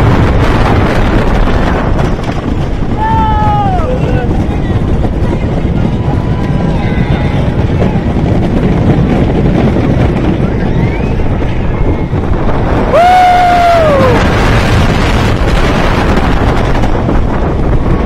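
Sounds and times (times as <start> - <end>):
roller coaster rumbling on track: 0.0 - 18.0
wind buffeting microphone: 0.0 - 18.0.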